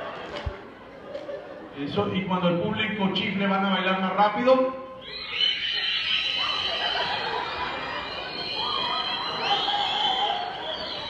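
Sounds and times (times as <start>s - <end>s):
audience whistling: 4.9s - 11.0s.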